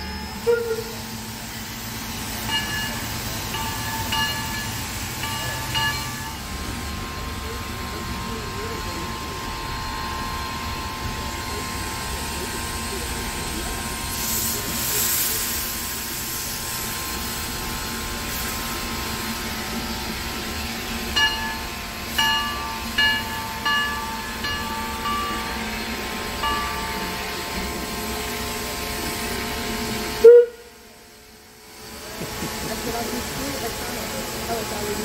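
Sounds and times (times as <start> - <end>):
steam locomotive whistle toots: 0.0 - 1.2, 29.8 - 30.9
steady steam hiss: 0.0 - 35.0.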